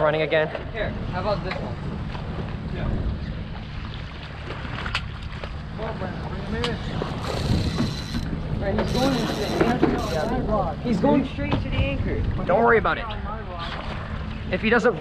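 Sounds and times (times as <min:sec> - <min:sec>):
wind buffeting microphone: 0:00.6 - 0:15.0
water against boat hull: 0:01.3 - 0:12.6
faint voices: 0:05.8 - 0:11.7.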